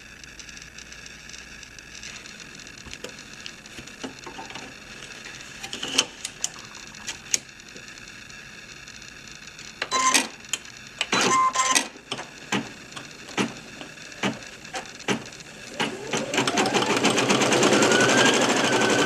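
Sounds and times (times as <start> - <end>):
embroidery machine motor whine: 0.0 - 19.0.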